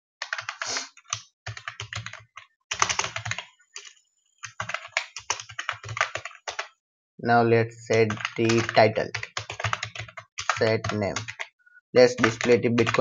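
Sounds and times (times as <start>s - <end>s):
typing on computer keyboard: 0.2s - 6.7s, 7.9s - 13.0s.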